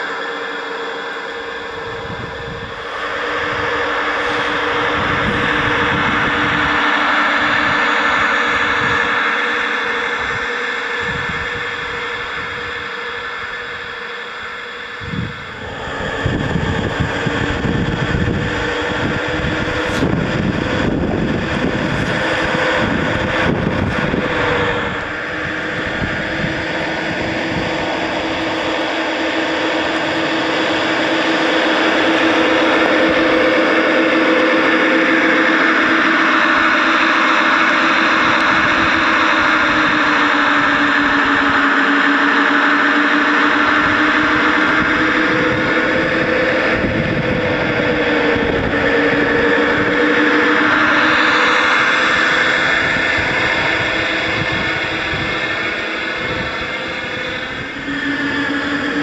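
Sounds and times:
model locomotive engine drone: 0.0 - 59.0.

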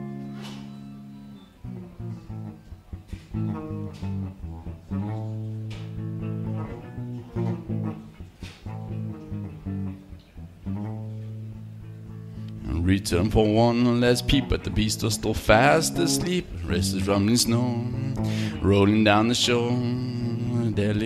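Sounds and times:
guitar plucked notes: 0.0 - 21.0
low ringing bass notes: 0.0 - 21.0.

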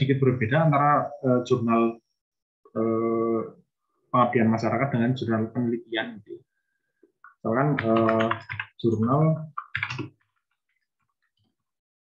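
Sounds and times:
computer keyboard typing: 7.7 - 11.7.

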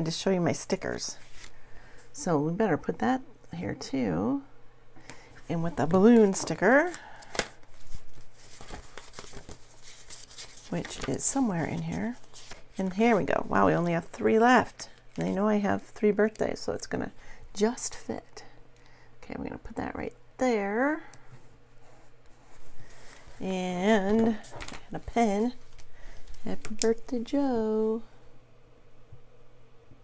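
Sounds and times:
sticker pages rustling: 6.0 - 14.2.

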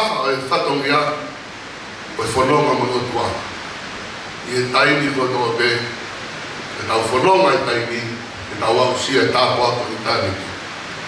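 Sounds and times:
man speaking into a microphone: 0.0 - 1.4, 2.1 - 3.5, 4.4 - 6.0, 6.8 - 10.6
steady hiss: 0.0 - 11.0.

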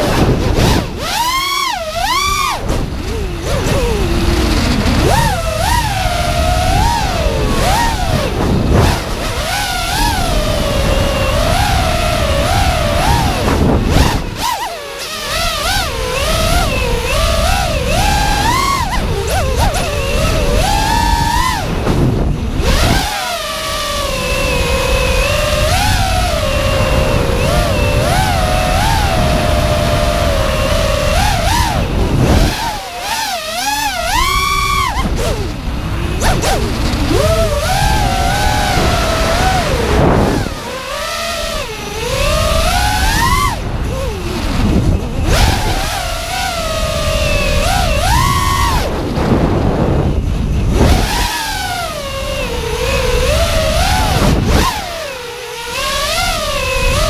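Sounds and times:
drone motors whining: 0.0 - 57.0
wind rumble on microphone: 0.0 - 57.0.

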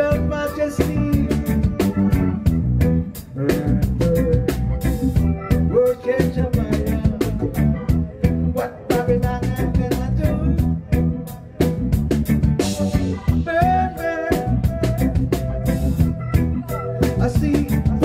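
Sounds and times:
man singing into microphone: 0.0 - 2.4, 3.3 - 11.5, 13.2 - 15.7, 16.6 - 18.0
reggae band playing: 0.0 - 18.0.

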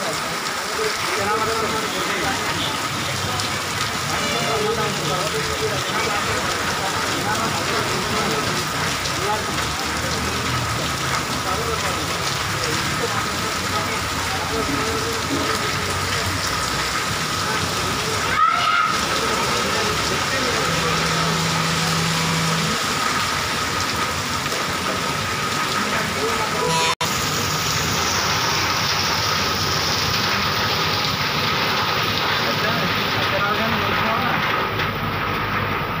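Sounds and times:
rain falling on awnings: 0.0 - 36.0.

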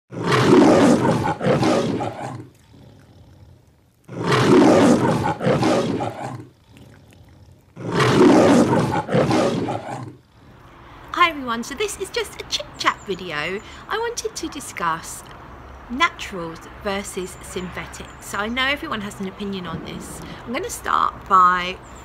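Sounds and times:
lion roaring: 0.1 - 10.6.

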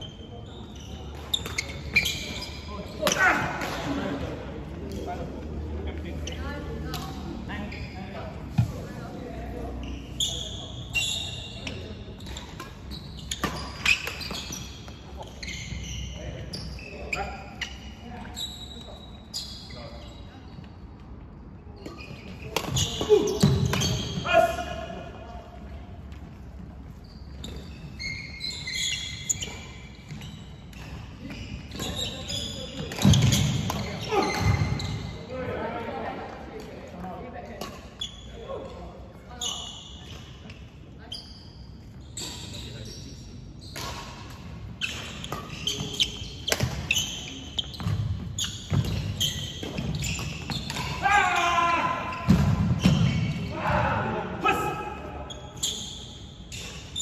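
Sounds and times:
shoes squeaking: 0.0 - 3.4, 6.0 - 24.8, 26.0 - 35.3, 37.5 - 57.0
players' voices: 0.1 - 12.6, 45.4 - 56.1.

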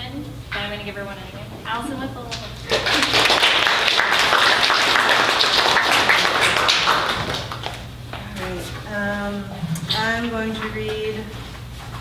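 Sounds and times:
audience applauding: 2.7 - 7.8.

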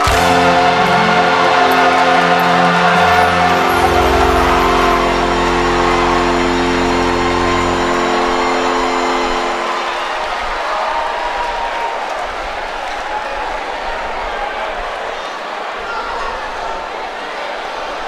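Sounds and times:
deep bass: 0.0 - 9.5
choir holding a chord: 0.0 - 11.4
crowd noise: 0.0 - 18.0.

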